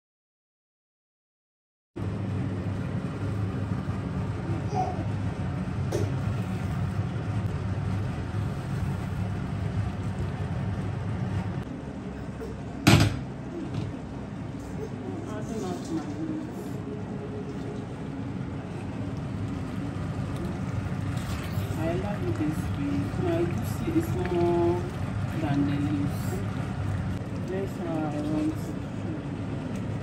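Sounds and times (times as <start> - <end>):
low steady hum: 2.0 - 30.0.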